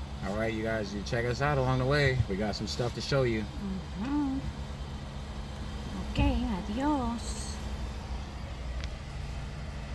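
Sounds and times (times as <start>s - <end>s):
car cabin rumble: 0.0s - 9.9s.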